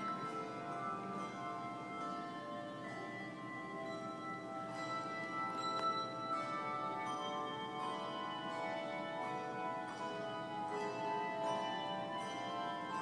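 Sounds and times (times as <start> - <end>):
handbell choir playing: 0.0 - 13.0.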